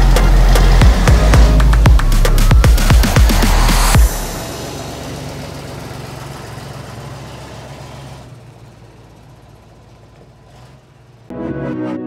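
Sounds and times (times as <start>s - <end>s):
loud electronic music: 0.0s - 4.5s.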